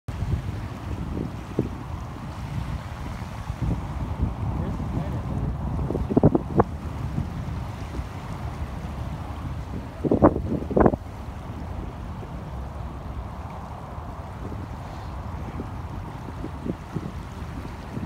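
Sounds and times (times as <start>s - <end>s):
small waves lapping: 0.1s - 18.0s
wind buffeting microphone: 0.1s - 18.0s.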